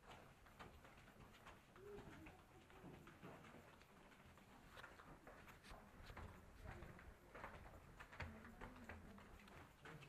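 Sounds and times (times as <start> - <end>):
footsteps in stone tunnel: 0.0 - 10.0.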